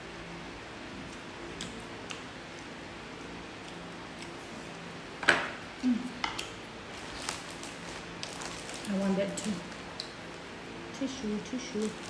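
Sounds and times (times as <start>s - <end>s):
low room hum: 0.0s - 12.0s
chewing clicks and smacks: 1.1s - 2.8s, 9.9s - 10.2s.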